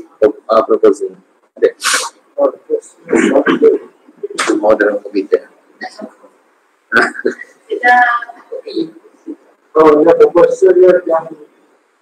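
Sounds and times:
man speaking: 0:00.0 - 0:06.3, 0:06.9 - 0:07.5, 0:08.4 - 0:11.6
short sharp hiss: 0:01.7 - 0:02.2.

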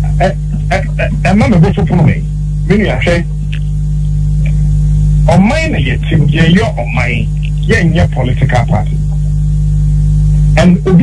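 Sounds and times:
person speaking: 0:00.0 - 0:03.8, 0:05.2 - 0:09.3, 0:10.5 - 0:11.0
electrical mains hum: 0:00.0 - 0:11.0.

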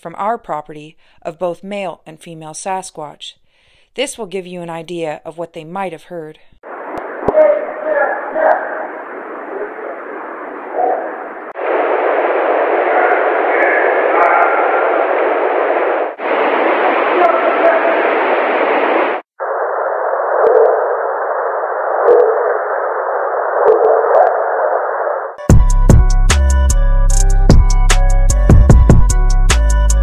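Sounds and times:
heavy radio-like hiss: 0:06.7 - 0:25.3
faint voice-like chatter: 0:07.3 - 0:11.3, 0:12.7 - 0:14.9.

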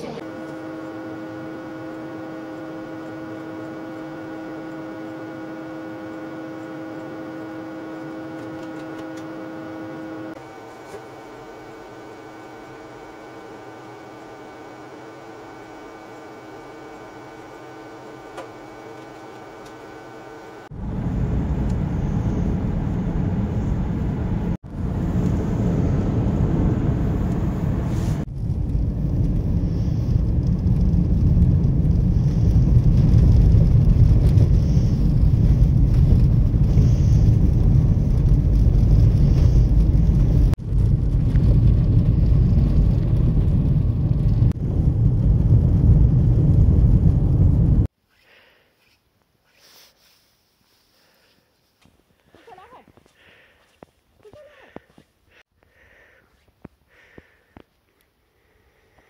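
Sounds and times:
car driving on snowy road: 0:00.0 - 0:10.6, 0:20.6 - 0:47.9
electrical hum of lab equipment: 0:00.0 - 0:21.8.

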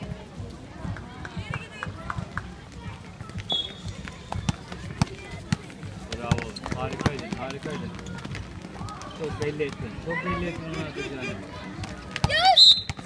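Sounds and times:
feet hitting court: 0:03.2 - 0:10.0
basketball bouncing: 0:04.3 - 0:08.5.

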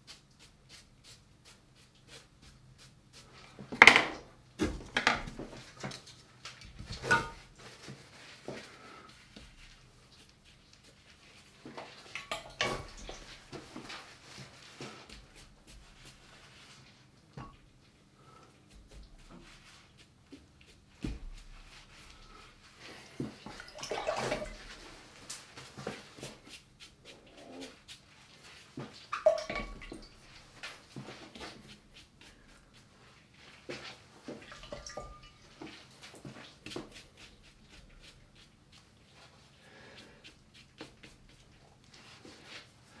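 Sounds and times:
paintbrush strokes on paper: 0:00.0 - 0:03.7, 0:07.4 - 0:12.1, 0:12.8 - 0:17.2, 0:18.6 - 0:23.4, 0:24.6 - 0:29.1, 0:29.9 - 0:34.7, 0:35.3 - 0:43.0
wet brush swishes: 0:06.9 - 0:17.1, 0:18.6 - 0:43.0.

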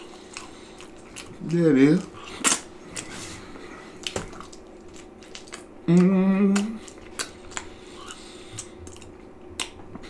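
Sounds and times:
wet squishing of eating pizza: 0:00.0 - 0:10.0.

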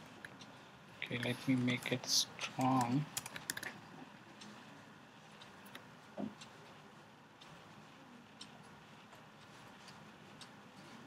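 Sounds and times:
typing on computer keyboard: 0:02.6 - 0:03.8.

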